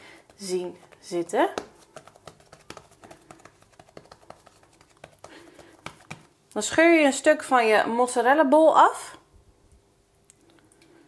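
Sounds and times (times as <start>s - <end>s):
hands patting dough: 0.0s - 6.4s.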